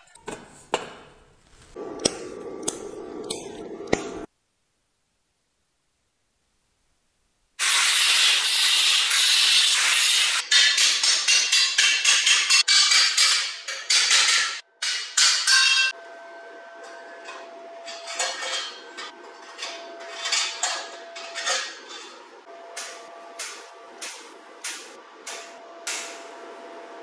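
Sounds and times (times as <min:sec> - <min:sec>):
electric arc welding crackle: 0:07.6 - 0:10.4.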